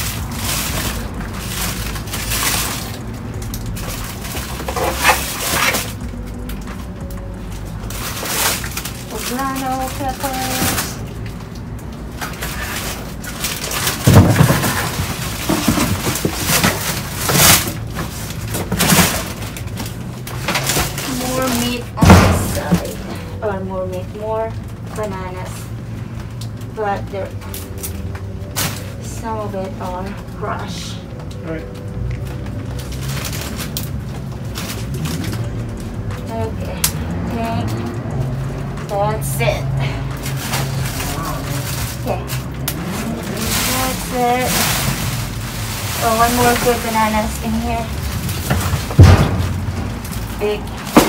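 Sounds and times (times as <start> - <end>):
plastic bags rustling: 0.0 - 51.0
deep thump in metal dumpster: 48.6 - 50.0.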